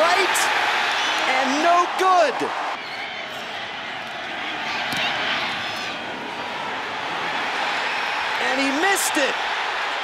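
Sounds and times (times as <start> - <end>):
stadium crowd roar: 0.0 - 10.0.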